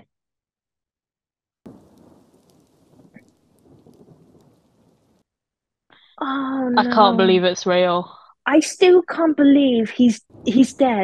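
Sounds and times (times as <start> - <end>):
rumbling thunder: 1.7 - 5.2
rain: 1.7 - 5.3.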